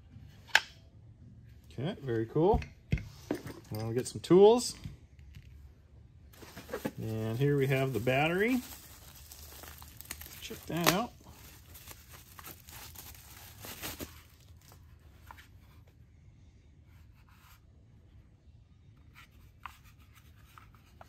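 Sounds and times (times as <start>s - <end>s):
bubble wrap rustling and crinkling: 6.4s - 15.0s.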